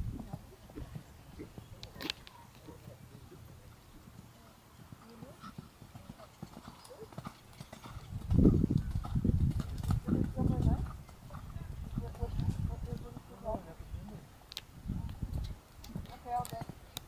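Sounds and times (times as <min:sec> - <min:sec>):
horse hoofbeats trotting on dirt: 0:00.0 - 0:14.2, 0:15.1 - 0:17.0.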